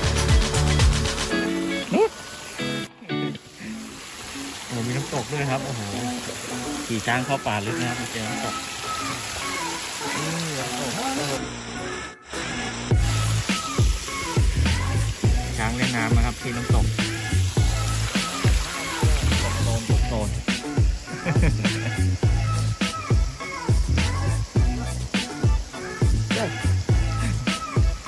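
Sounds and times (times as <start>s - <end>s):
music with heavy beat: 0.0s - 1.7s, 12.9s - 28.0s
fountain water splashing: 0.0s - 28.0s
voices: 1.4s - 28.0s.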